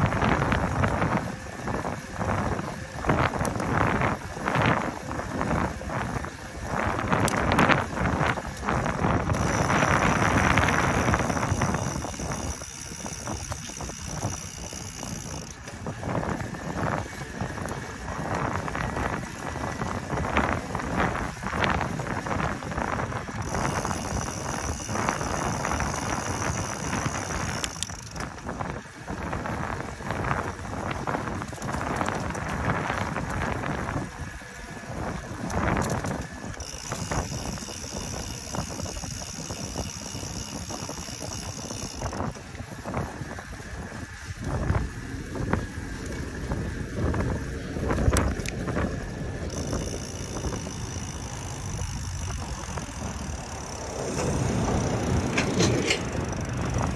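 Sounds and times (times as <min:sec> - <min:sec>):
wind buffeting microphone: 0:00.0 - 0:56.9.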